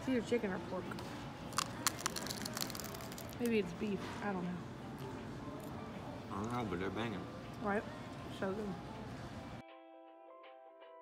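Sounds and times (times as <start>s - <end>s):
taco crunching: 1.5s - 3.5s.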